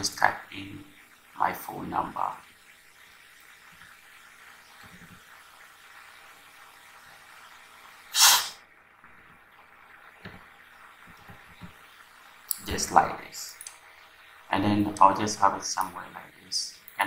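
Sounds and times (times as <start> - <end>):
faint steady hiss: 0.0 - 17.0
faint taps: 10.2 - 11.8.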